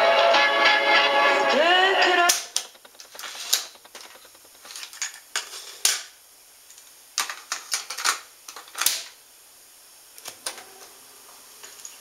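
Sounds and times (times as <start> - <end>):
music from cassette player: 0.0 - 4.4.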